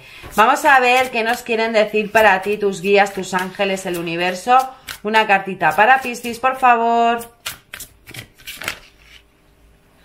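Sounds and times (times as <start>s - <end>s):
cards being shuffled: 7.4s - 9.3s.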